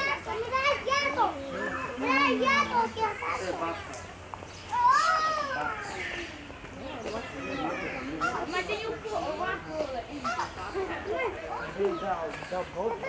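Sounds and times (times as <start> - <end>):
children chattering: 0.0 - 13.0
child's drawn-out call: 4.7 - 6.5.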